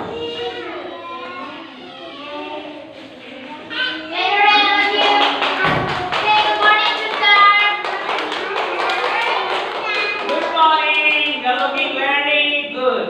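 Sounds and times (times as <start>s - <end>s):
young children singing: 0.0s - 12.4s
hand claps: 4.6s - 11.9s.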